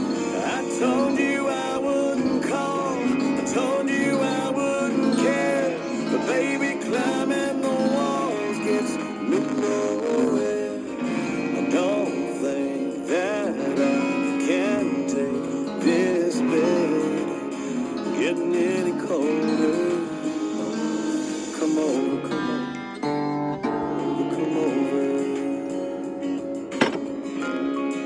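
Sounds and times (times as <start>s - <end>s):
acoustic guitar: 0.0s - 28.0s
man singing: 0.0s - 28.0s.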